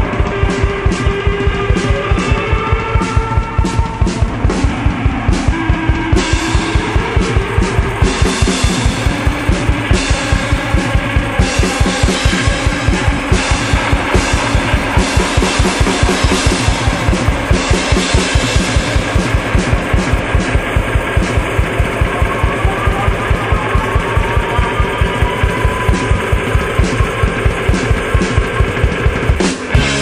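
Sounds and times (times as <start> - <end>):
instrumental blues-rock band: 0.0 - 30.0.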